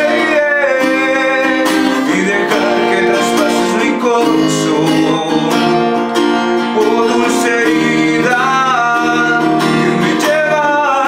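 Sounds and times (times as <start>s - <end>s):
acoustic guitar playing slow song: 0.0s - 11.0s.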